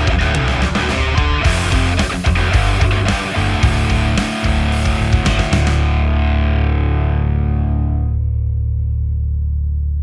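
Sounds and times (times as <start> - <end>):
distorted electric guitar chord ringing: 0.0 - 9.5.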